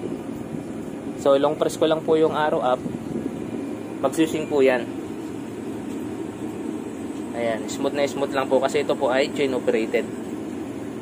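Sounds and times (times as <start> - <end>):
egg incubator mechanical whir: 0.0 - 11.0.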